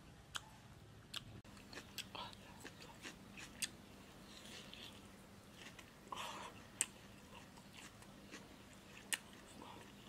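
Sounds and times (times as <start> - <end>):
person chewing crunchy food: 1.1 - 10.0.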